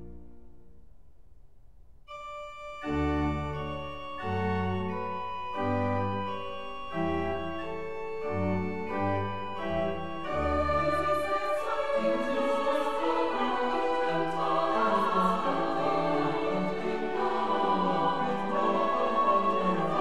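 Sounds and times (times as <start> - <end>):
organ playing chords: 2.1 - 20.0.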